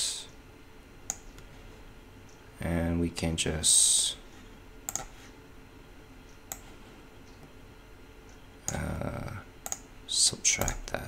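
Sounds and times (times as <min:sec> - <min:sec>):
low steady hiss: 0:00.0 - 0:11.0
computer mouse clicking: 0:01.1 - 0:01.5, 0:04.8 - 0:05.1, 0:06.3 - 0:07.5, 0:09.6 - 0:09.9, 0:10.6 - 0:10.9.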